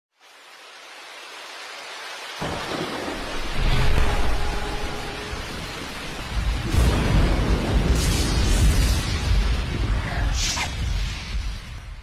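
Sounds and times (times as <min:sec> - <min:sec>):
rain hiss: 0:00.1 - 0:12.0
deep rolls of thunder: 0:02.4 - 0:12.0.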